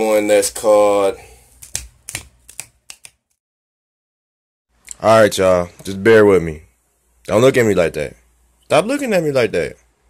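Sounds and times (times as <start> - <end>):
person speaking: 0.0 - 3.1
fingers snapping: 1.6 - 3.4.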